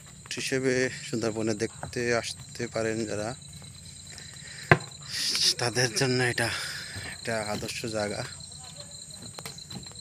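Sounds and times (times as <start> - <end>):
insects droning: 0.0 - 10.0
man talking: 5.2 - 8.4.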